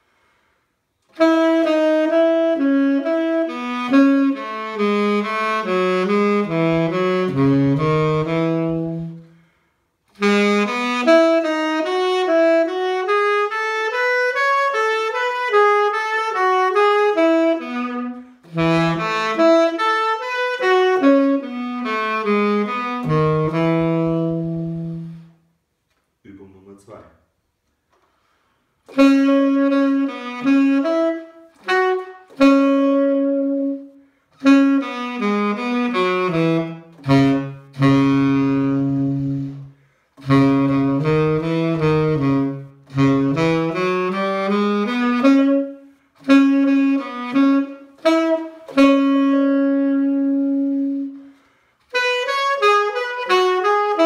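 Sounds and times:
player breathing: 0.0 - 0.9, 27.9 - 28.9, 39.7 - 40.2, 51.1 - 51.9
tenor saxophone playing: 0.0 - 25.7, 27.9 - 54.0.

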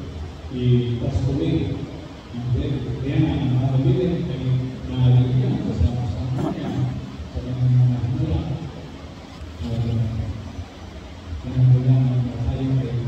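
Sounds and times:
man preaching: 2.4 - 8.7, 9.6 - 10.4.

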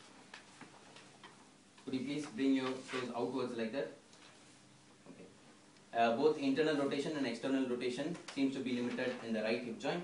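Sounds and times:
man speaking: 1.8 - 4.0, 5.9 - 10.0.

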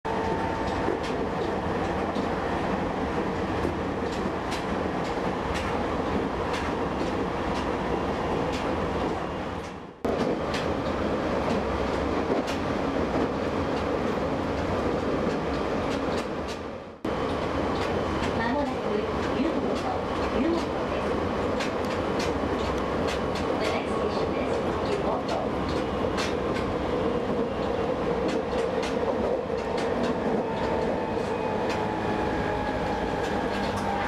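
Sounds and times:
train car rumble: 0.1 - 34.0
wheels clicking over rail joints: 3.5 - 8.8, 17.4 - 32.0, 32.7 - 34.0.

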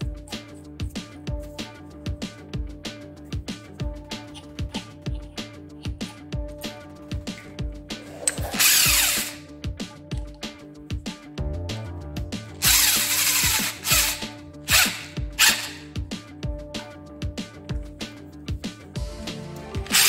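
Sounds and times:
power drill bursts: 8.4 - 9.4, 12.6 - 15.9.

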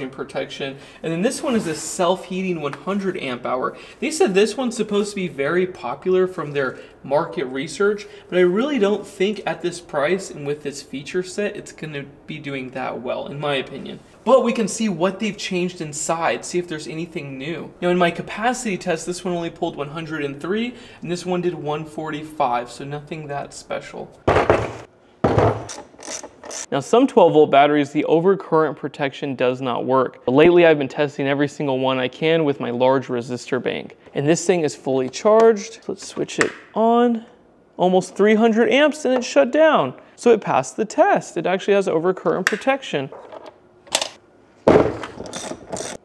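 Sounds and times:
heavy thuds on wooden workbench: 24.3 - 25.7, 44.7 - 45.1.

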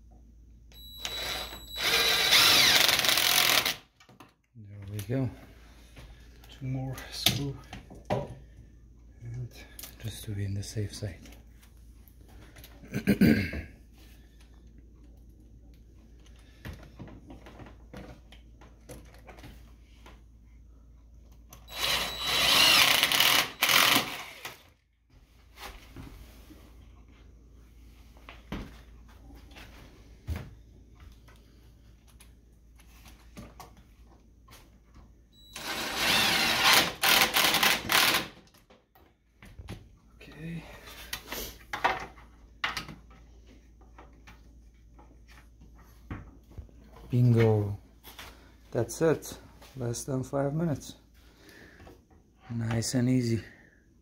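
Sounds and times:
cordless drill driving screws: 0.7 - 3.8, 21.7 - 24.7, 35.5 - 38.4.

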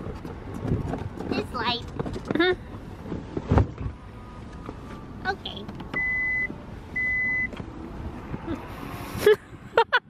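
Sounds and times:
low hum of traffic: 0.0 - 10.0
high electronic beeps: 6.0 - 7.5.

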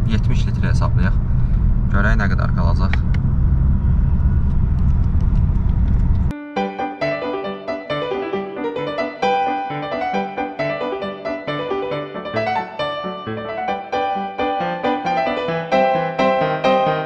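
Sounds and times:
diesel engine rumble in car: 0.0 - 6.3
road noise inside car: 0.0 - 6.3
piano music: 6.3 - 17.0.

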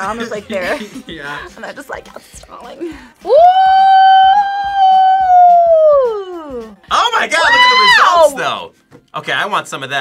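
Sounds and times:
high voice singing ooh: 3.2 - 6.8.

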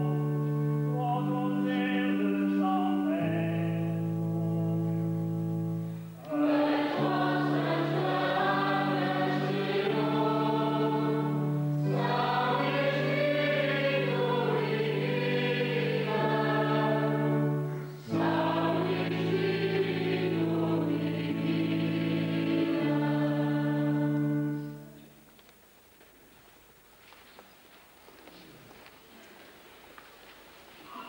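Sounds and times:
church choir singing a hymn: 0.0 - 5.3, 6.2 - 25.1
held accompaniment chords: 0.0 - 25.3.

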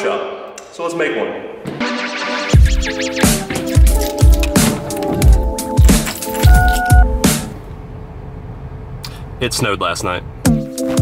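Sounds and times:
electronic music: 1.8 - 7.5.

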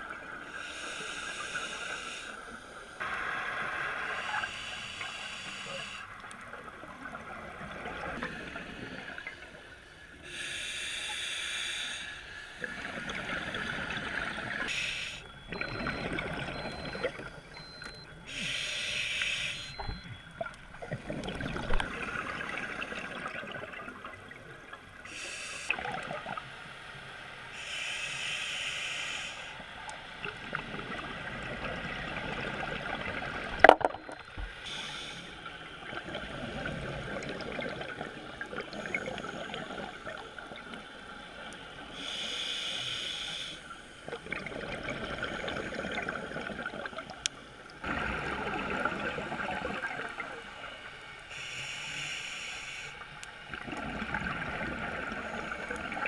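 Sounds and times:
steady regulator hiss: 0.4 - 6.2, 8.2 - 13.1, 14.4 - 15.3, 18.3 - 19.8, 25.0 - 25.8, 26.4 - 30.2, 34.4 - 36.0, 38.7 - 44.1, 50.0 - 53.6.

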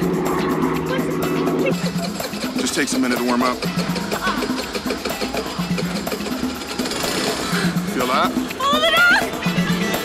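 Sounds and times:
background music with bass: 0.0 - 10.0
scooter engine idling: 0.0 - 10.0.

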